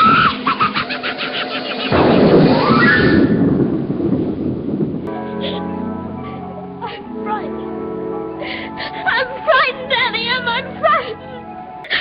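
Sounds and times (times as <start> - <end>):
rumbling whoosh: 1.7 - 5.1.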